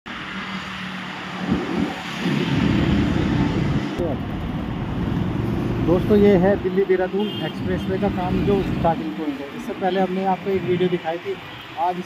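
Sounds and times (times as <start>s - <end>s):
road traffic: 0.1s - 12.0s.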